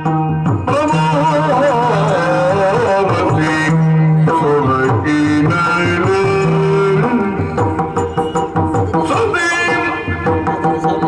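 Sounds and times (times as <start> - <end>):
drum strokes: 0.0 - 11.0.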